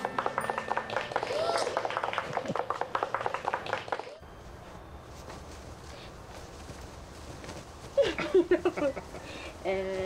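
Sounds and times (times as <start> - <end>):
people clapping: 0.0 - 4.2.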